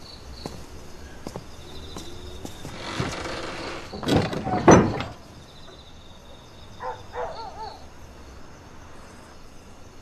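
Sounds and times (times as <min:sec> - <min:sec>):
faint insect chirping: 0:00.0 - 0:10.0.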